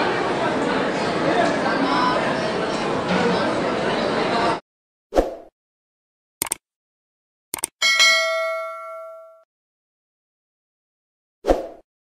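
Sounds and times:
notification bell ding: 7.8s - 9.5s.

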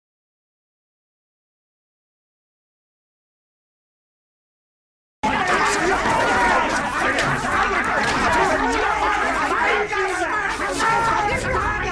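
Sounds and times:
men's voices speaking over each other: 5.2s - 11.9s.

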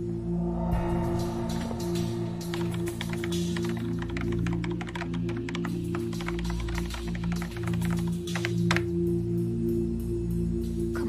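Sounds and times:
background music drone: 0.0s - 11.0s
typing on computer keyboard: 2.5s - 8.9s.

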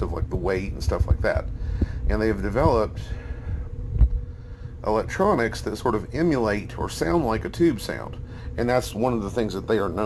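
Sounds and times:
faint steady hum: 0.0s - 10.0s
low rumble: 0.0s - 10.0s.

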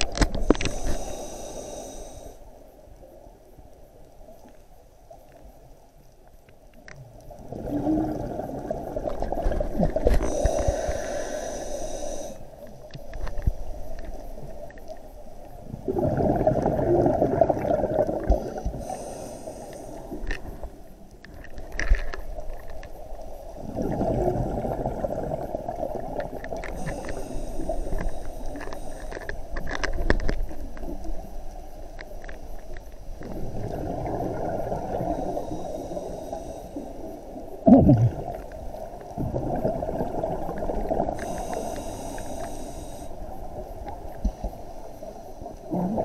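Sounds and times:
exhaled bubbles underwater: 7.2s - 10.9s, 15.6s - 20.8s, 23.6s - 28.5s, 33.2s - 36.5s, 37.3s - 42.2s, 45.6s - 46.0s
scuba regulator hissing: 10.2s - 12.4s, 41.2s - 43.1s.

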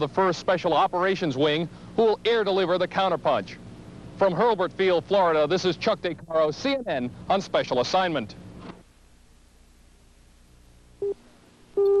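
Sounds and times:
faint tape hiss: 0.0s - 12.0s.

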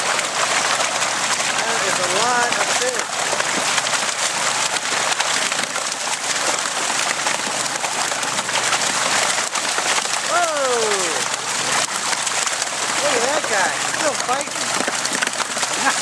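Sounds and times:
water rushing down metal chute: 0.0s - 16.0s.

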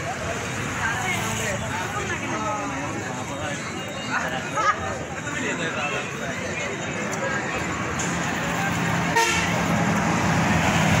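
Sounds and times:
car horn toot: 9.1s - 9.6s.

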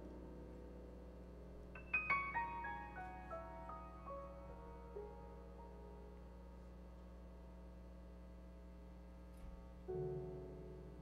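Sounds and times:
piano chord ringing: 0.0s - 6.5s.

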